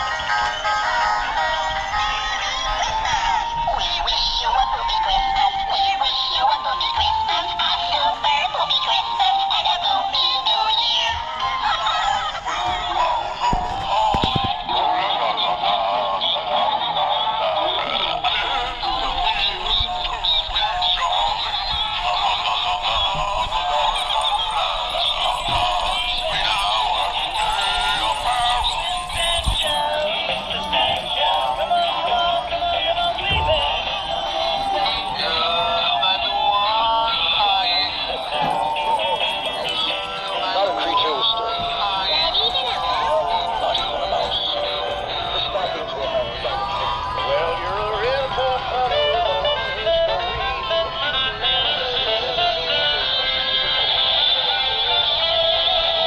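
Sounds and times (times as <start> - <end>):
toy speakers playing songs: 0.0 - 56.0.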